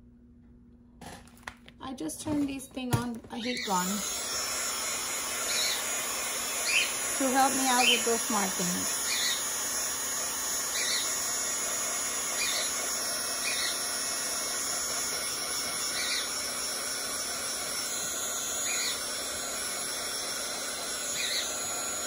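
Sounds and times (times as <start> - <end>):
heat gun blowing whir: 2.4 - 22.0.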